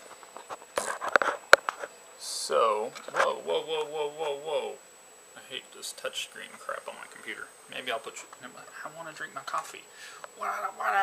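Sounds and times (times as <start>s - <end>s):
voice with wavering pitch: 2.2s - 4.8s, 10.4s - 11.0s.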